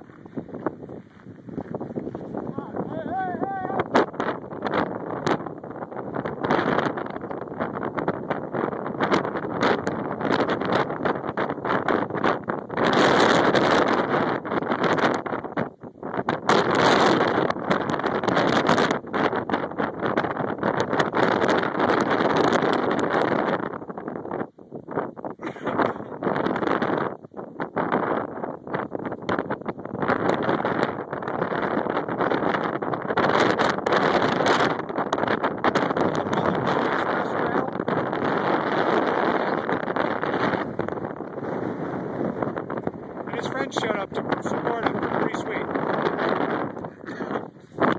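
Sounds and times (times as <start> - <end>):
wind buffeting microphone: 0.0 - 47.9.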